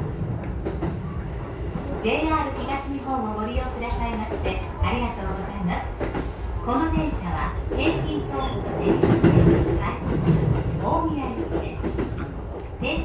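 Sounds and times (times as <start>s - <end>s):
train wheels rumbling on track: 0.0s - 13.0s.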